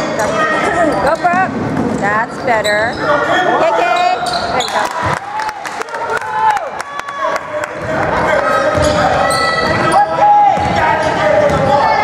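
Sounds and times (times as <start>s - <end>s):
players' voices: 0.0s - 12.0s
sneakers squeaking: 0.3s - 5.0s, 7.8s - 12.0s
basketball bouncing: 7.8s - 9.9s, 10.5s - 12.0s.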